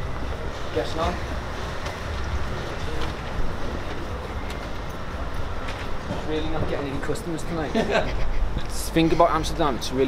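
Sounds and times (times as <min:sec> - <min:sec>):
low rumble of street traffic: 0:00.0 - 0:10.0.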